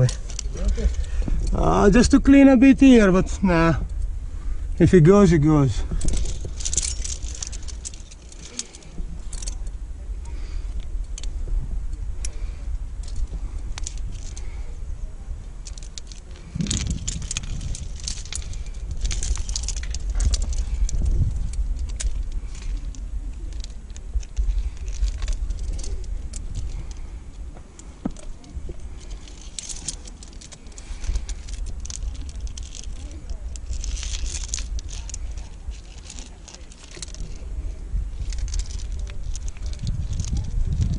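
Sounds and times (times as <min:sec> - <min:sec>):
metal carabiners clinking: 0:00.0 - 0:04.0, 0:04.9 - 0:11.3, 0:12.2 - 0:14.8, 0:15.5 - 0:40.9
steady low rumble: 0:00.0 - 0:40.9.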